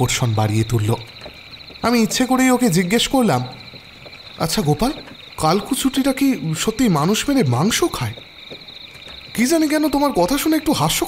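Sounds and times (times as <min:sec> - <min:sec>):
crickets chirring: 0:00.0 - 0:11.0
person speaking: 0:01.8 - 0:03.7, 0:09.3 - 0:11.0.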